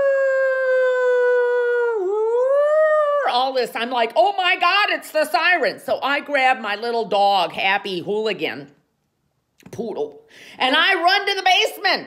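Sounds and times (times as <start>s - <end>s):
woman imitating a siren: 0.0s - 3.6s.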